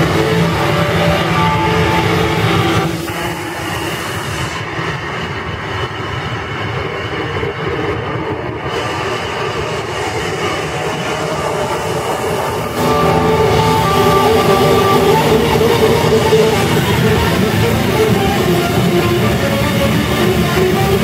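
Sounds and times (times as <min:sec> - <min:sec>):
guitar feedback and effects wash: 0:00.0 - 0:05.4, 0:08.7 - 0:21.0
band playing heavy music: 0:12.8 - 0:21.0.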